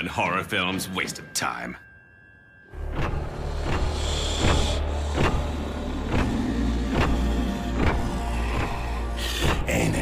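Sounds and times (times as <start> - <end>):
tense dark soundtrack music: 0.0 - 10.0.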